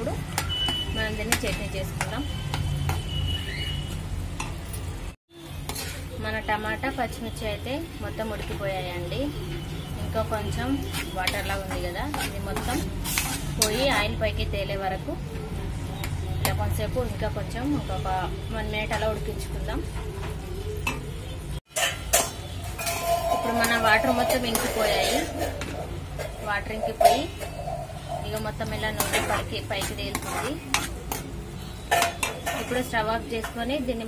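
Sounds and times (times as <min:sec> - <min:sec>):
metal spatula scraping a pan: 0:05.4 - 0:07.0, 0:09.5 - 0:14.2, 0:21.7 - 0:34.0
metal spoon stirring: 0:05.5 - 0:06.3, 0:10.3 - 0:14.2, 0:21.7 - 0:34.0.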